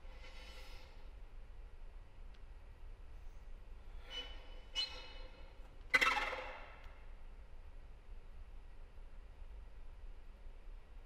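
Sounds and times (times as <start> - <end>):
faint click: 2.3 - 2.5.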